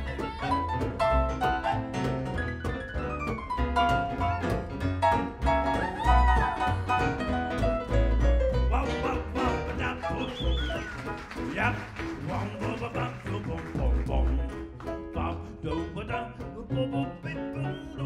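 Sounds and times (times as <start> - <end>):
jazz band playing: 0.0 - 18.0.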